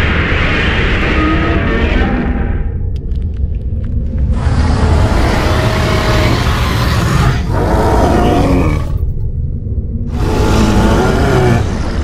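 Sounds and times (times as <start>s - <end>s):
steady low rumble: 0.0s - 6.8s, 8.8s - 10.9s
monster roar: 4.4s - 9.0s, 10.1s - 12.0s.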